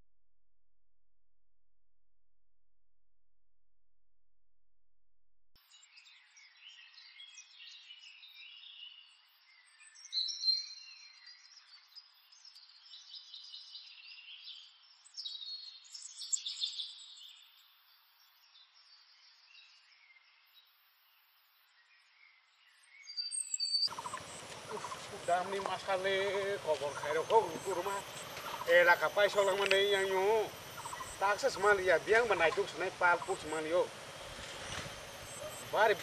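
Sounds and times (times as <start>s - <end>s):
birds chirping and whistling: 23.0s - 36.0s.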